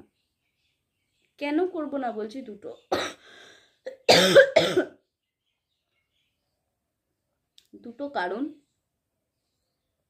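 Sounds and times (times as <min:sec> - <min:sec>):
woman coughing: 0:02.9 - 0:03.2, 0:03.9 - 0:05.0.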